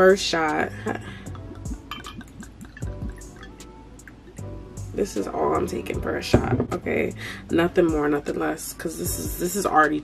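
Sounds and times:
background music: 0:00.0 - 0:10.0
liquid pouring into shot glass: 0:01.3 - 0:04.4.

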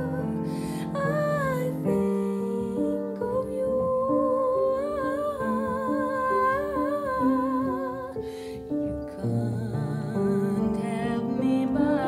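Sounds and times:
grand piano accompaniment: 0:00.0 - 0:12.0
woman singing with vibrato: 0:00.0 - 0:12.0.

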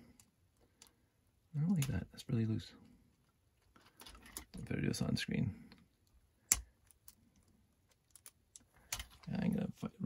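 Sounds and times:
small plastic clicks: 0:06.0 - 0:09.3.

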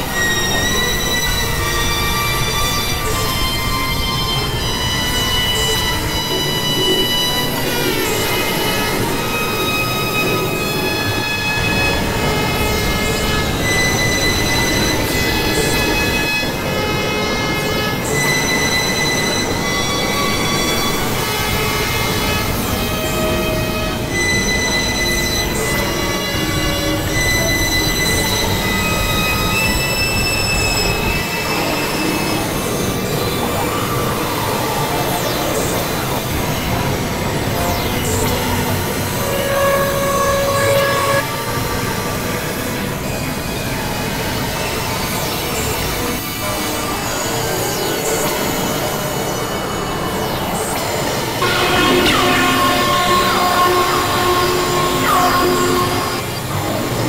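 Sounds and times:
high squealing tones: 0:00.0 - 0:43.0, 0:47.0 - 0:57.0
synthesizer noise music: 0:00.0 - 0:57.0.

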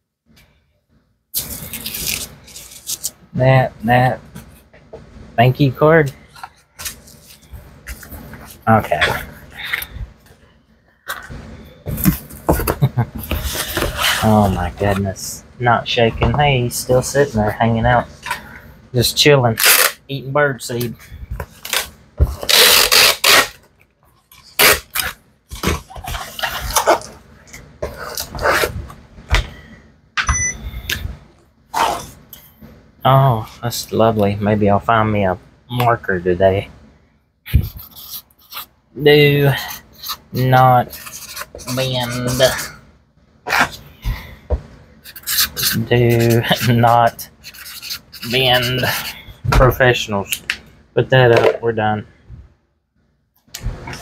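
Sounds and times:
paper and cardboard rustling: 0:01.4 - 0:03.2, 0:11.9 - 0:15.3, 0:24.2 - 0:28.9, 0:45.1 - 0:49.8
packing tape rasping off tape gun: 0:19.6 - 0:20.0, 0:21.6 - 0:23.6, 0:24.4 - 0:25.2.

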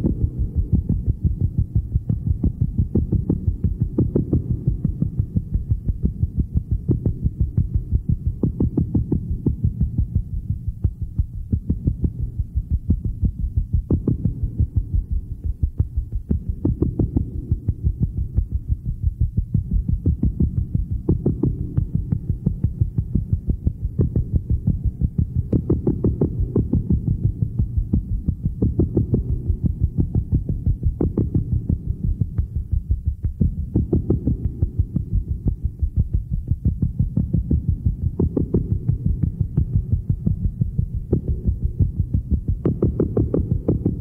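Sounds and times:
low thumps: 0:00.0 - 0:44.0
muffled bass-heavy music: 0:00.0 - 0:44.0
rapid low thuds: 0:00.0 - 0:44.0
steady low hum: 0:00.0 - 0:44.0.

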